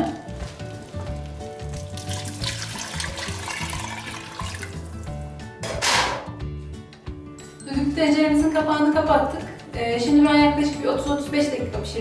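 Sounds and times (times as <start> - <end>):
water pouring into a pot: 1.5 - 5.3.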